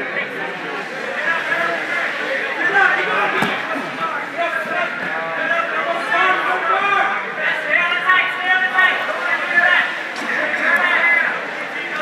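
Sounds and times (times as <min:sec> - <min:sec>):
people talking and shouting: 0:00.0 - 0:12.0.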